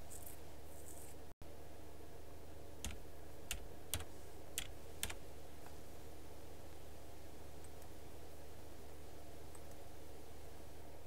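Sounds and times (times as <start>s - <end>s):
low electrical hum: 0.0s - 11.0s
computer keystrokes: 2.8s - 5.2s.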